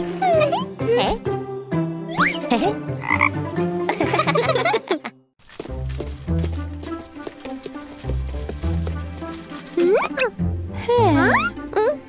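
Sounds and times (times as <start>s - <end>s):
cartoon frog croaking: 3.0s - 3.4s.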